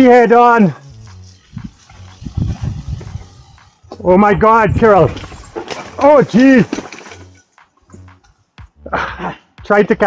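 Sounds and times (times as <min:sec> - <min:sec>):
mountain bike knocks and rumbles: 0:01.2 - 0:04.0, 0:04.7 - 0:08.3.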